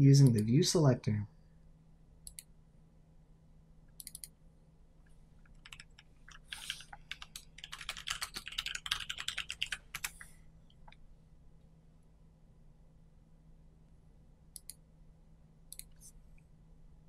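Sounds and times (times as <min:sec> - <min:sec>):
keyboard typing: 0:05.4 - 0:10.3.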